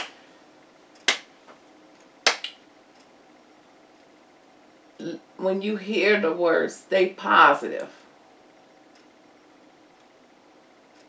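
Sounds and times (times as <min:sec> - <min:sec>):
sharp hand claps: 0:00.0 - 0:00.2, 0:01.0 - 0:01.3, 0:02.2 - 0:02.6.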